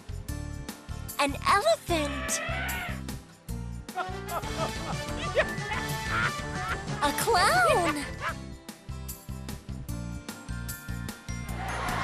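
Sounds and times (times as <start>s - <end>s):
light background music: 0.0s - 12.0s
cartoon clown laughing: 3.9s - 8.4s.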